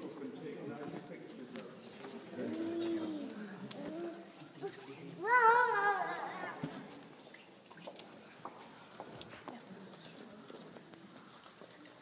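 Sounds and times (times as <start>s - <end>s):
faint background murmur: 0.0s - 12.0s.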